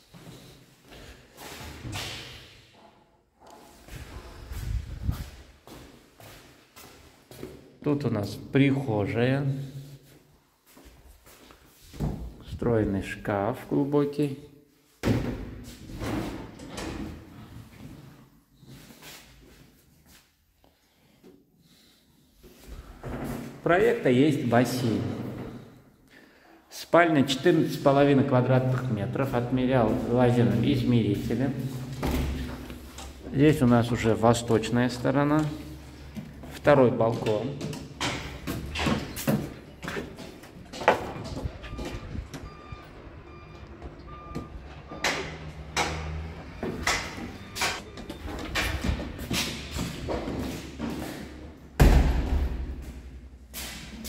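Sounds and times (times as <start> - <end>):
reversing alarm beeps: 41.3 - 48.6.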